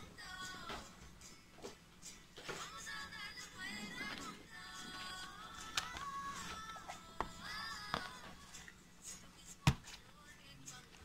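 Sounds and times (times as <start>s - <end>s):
song with singing voice: 0.0s - 11.0s.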